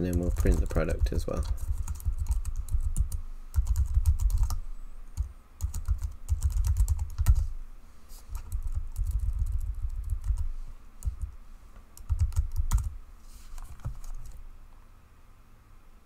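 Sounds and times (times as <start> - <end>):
typing on computer keyboard: 0.0 - 4.6, 5.2 - 7.4, 8.3 - 11.4, 12.0 - 12.9.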